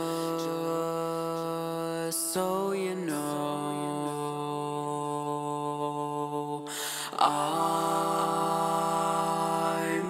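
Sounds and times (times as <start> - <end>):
sung vocal: 0.0 - 10.0
sustained backing vocal harmonies: 0.0 - 10.0.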